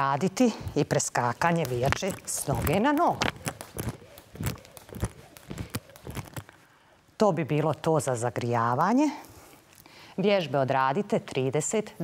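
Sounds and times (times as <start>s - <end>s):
skipping rope tapping floor: 0.7s - 6.6s.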